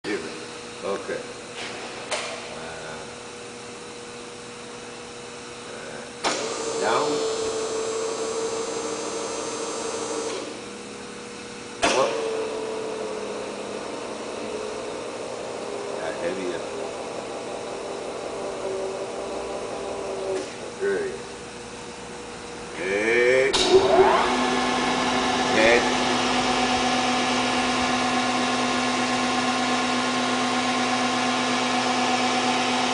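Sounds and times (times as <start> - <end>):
grinding head whirring: 1.4 - 32.9
grinder humming: 12.0 - 21.3, 22.4 - 32.9.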